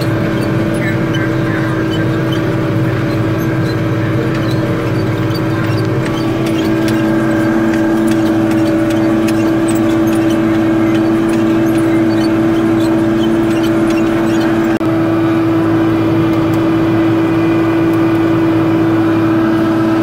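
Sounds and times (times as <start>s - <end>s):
tractor diesel engine running: 0.0s - 20.0s.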